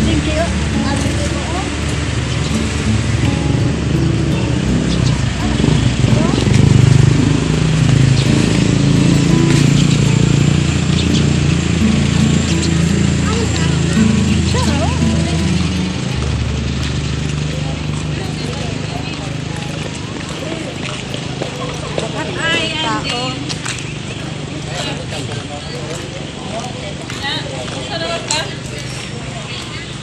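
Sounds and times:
background music with low bass: 0.0s - 22.7s
faint outdoor voices: 0.0s - 30.0s.

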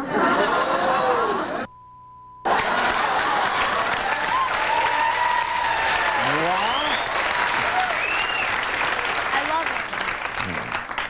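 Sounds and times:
audience applauding: 2.5s - 11.0s.

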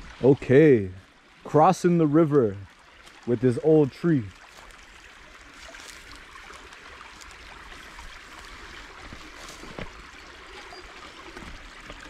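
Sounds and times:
creek trickling over rocks: 0.0s - 12.0s.

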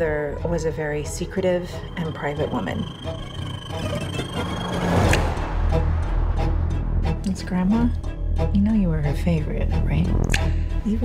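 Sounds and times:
deep low drone: 0.0s - 11.0s
held high tone: 1.3s - 6.0s
rising noise: 1.8s - 8.0s.

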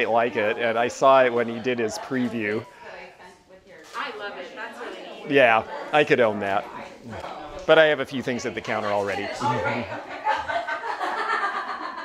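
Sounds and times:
people talking: 0.0s - 11.8s
people laughing: 8.9s - 12.0s.

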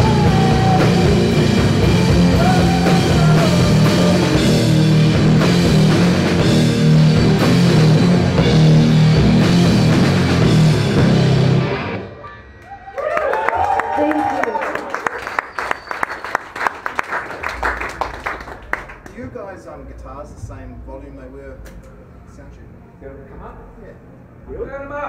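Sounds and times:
live rock band playing: 0.0s - 12.6s
audience clapping and cheering: 12.6s - 19.2s.

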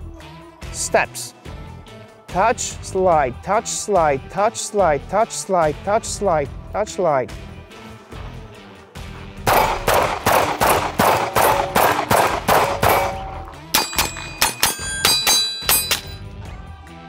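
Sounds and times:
handgun shots: 9.5s - 16.2s
steel target plate ringing: 11.4s - 16.2s.

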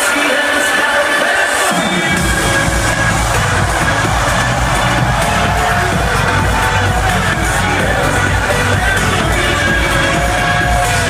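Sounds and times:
electronic dance music: 0.0s - 11.0s
deep bass line: 2.0s - 11.0s.

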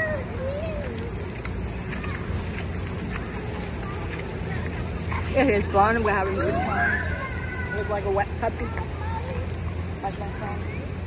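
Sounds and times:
sprinkler jets spraying water: 0.0s - 11.0s.

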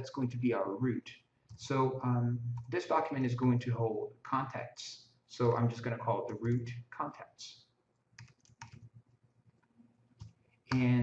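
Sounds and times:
computer keyboard typing: 8.2s - 9.0s, 10.2s - 11.0s.

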